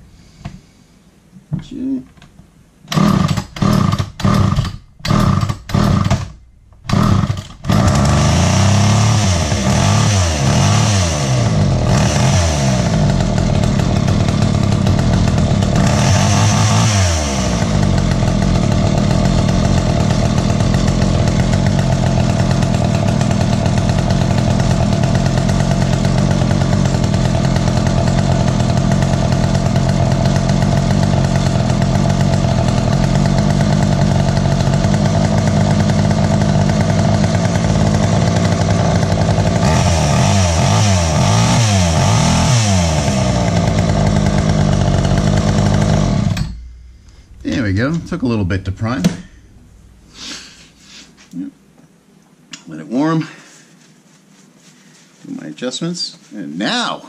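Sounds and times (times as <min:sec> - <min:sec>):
chainsaw engine revving and idling: 0:02.9 - 0:49.3.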